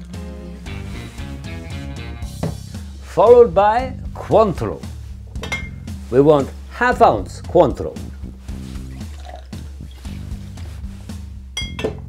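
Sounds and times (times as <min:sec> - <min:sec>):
background music: 0:00.0 - 0:12.0
ringing glass clink: 0:05.4 - 0:05.8, 0:11.6 - 0:12.0
liquid pouring into glass: 0:08.9 - 0:09.6.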